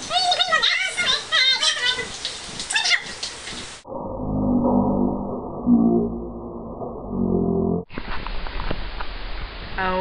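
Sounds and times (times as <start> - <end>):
high-pitched squeal: 3.9 - 7.8.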